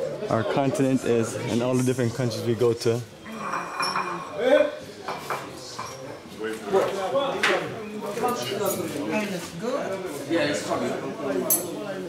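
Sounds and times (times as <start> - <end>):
people talking: 0.0 - 3.1
plates and cutlery clinking: 3.3 - 4.4, 5.0 - 9.0.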